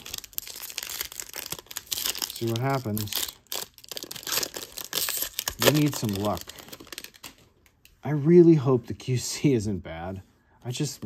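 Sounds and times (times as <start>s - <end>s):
foil wrapper crinkling: 0.0s - 7.5s.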